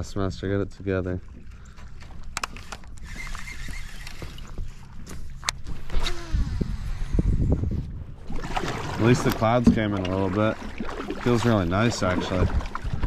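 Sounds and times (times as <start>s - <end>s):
water rumbling against hull: 0.0s - 13.0s
fishing reel clicks: 2.4s - 4.3s.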